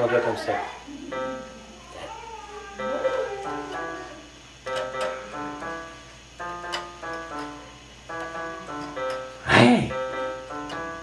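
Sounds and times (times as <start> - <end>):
electronic keyboard notes: 2.8 - 11.0.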